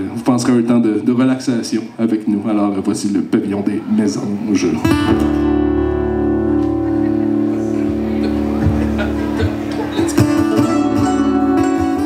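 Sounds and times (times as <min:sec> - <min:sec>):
acoustic guitar: 0:04.6 - 0:12.0
mandolin: 0:04.8 - 0:12.0.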